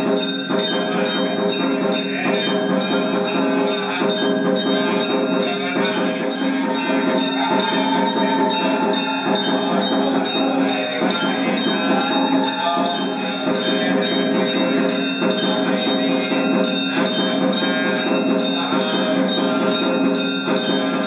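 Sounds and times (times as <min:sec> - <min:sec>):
jingling bell percussion: 0:00.0 - 0:21.0.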